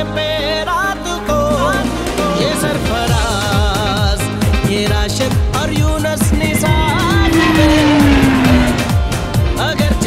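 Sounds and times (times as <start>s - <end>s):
song with steady drum beat: 1.8s - 9.6s
jet engine passing by: 6.2s - 9.4s.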